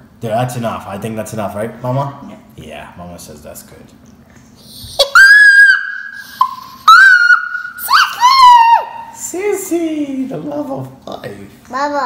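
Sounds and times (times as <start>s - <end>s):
child squealing: 4.7s - 9.2s.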